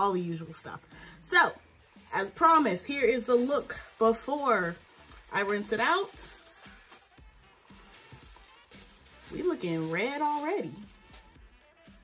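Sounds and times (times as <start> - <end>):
faint background music: 0.0 - 12.0
plastic cap rustling: 1.9 - 11.4.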